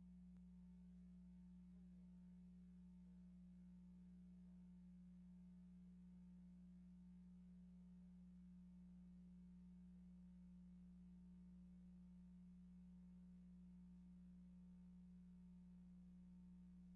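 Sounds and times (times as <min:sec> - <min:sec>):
faint steady low hum: 0:00.0 - 0:16.9.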